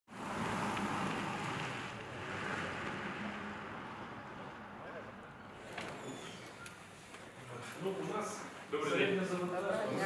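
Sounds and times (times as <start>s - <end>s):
car driving past: 0.1s - 6.2s.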